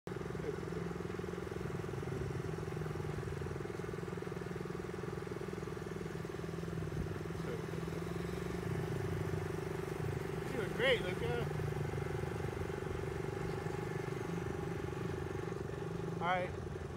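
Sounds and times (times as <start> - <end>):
small motorcycle engines running steadily: 0.1 - 16.9.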